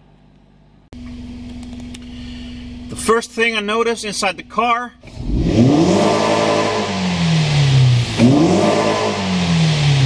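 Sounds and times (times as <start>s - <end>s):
car engine idling: 1.0s - 10.0s.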